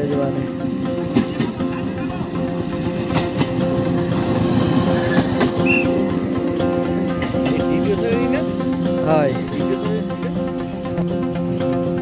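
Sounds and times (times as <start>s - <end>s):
small rail trolley engine running: 0.0s - 12.0s.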